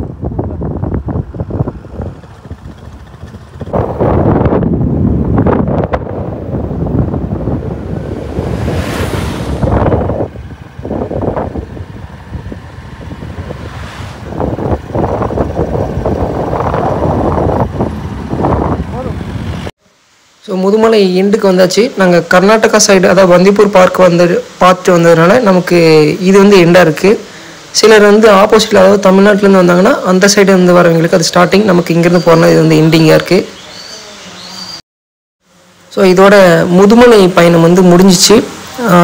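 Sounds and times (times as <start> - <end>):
wind buffeting microphone: 0.0 - 19.7
vehicle road noise: 0.0 - 19.8, 35.7 - 39.0.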